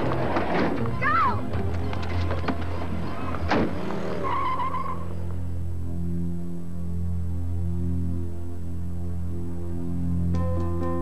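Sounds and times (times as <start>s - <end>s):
van tyres squealing: 0.0s - 5.3s.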